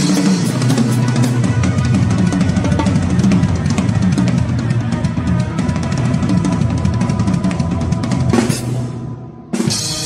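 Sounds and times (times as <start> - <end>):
fast snare and tom strokes: 0.0 - 8.9
band held notes: 0.0 - 10.0.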